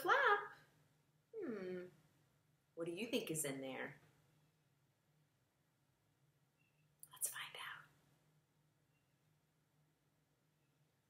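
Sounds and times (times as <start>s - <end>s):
person whispering: 7.0s - 7.9s.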